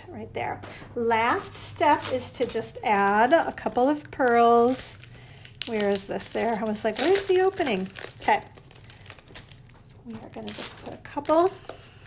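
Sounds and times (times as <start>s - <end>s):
packaging crinkling and rustling: 1.4s - 12.0s.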